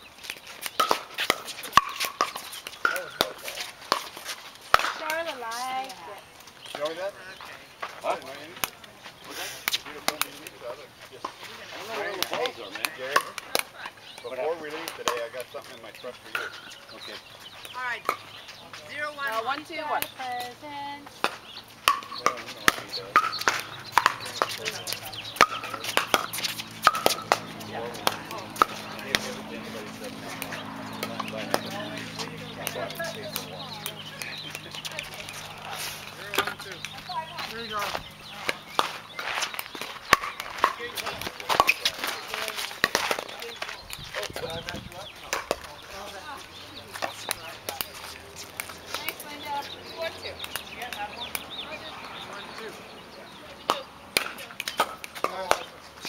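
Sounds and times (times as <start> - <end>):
paddles striking pickleball: 0.2 - 52.8, 53.4 - 56.0
ball bouncing on hard court: 0.6 - 5.5, 21.1 - 29.4.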